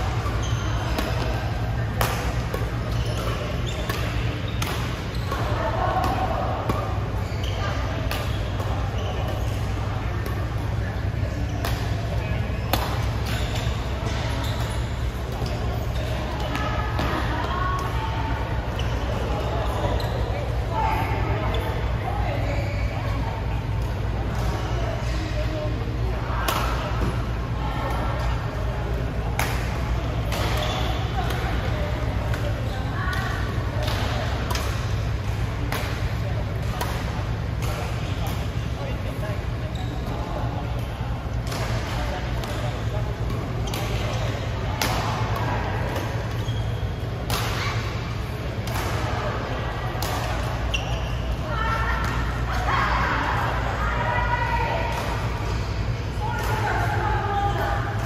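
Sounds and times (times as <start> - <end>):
low hum of hall: 0.0 - 58.0
racket hitting shuttlecock: 12.7 - 14.2, 44.8 - 46.4, 47.2 - 49.0, 50.0 - 50.6.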